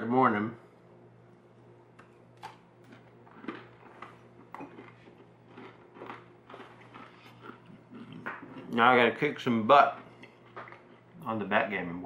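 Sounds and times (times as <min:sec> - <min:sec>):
person chewing crunchy biscuit: 0:02.4 - 0:08.8, 0:09.7 - 0:11.2.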